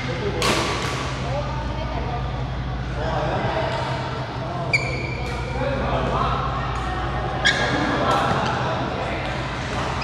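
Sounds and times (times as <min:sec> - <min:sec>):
rackets striking shuttlecock: 0:00.4 - 0:01.2
court shoes squeaking: 0:04.6 - 0:05.6, 0:07.3 - 0:08.6.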